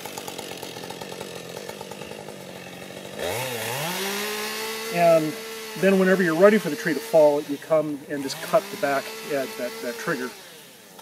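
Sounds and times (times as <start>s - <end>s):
chainsaw idling and revving: 0.0s - 11.0s.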